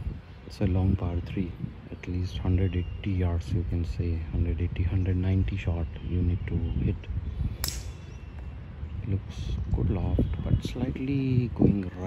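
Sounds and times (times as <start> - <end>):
outdoor background noise: 0.0 - 12.0
golf club striking ball: 7.6 - 8.2.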